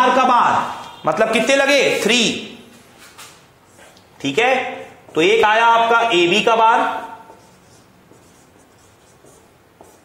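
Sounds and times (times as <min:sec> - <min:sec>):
marker pen scratching on whiteboard: 0:03.2 - 0:04.1, 0:06.8 - 0:10.0.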